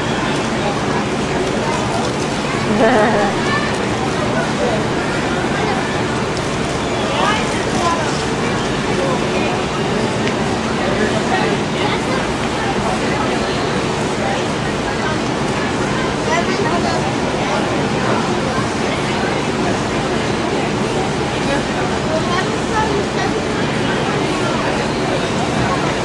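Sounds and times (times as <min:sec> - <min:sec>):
indistinct voices and chatter: 0:00.0 - 0:26.0
steady background noise: 0:00.0 - 0:26.0.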